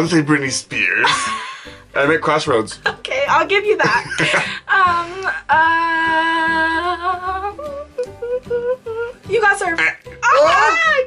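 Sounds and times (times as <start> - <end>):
person humming: 4.7 - 9.2.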